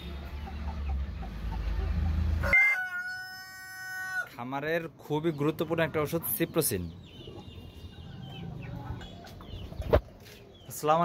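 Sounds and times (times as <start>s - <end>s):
chickens clucking: 0.0s - 4.2s, 5.0s - 11.0s.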